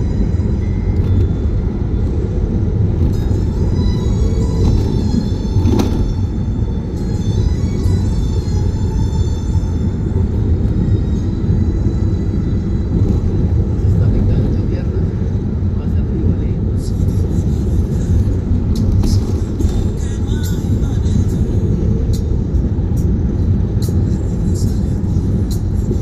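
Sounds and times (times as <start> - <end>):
car road and wind rumble: 0.0 - 26.0
music playing: 0.0 - 26.0
voice: 13.8 - 15.1, 15.7 - 16.9.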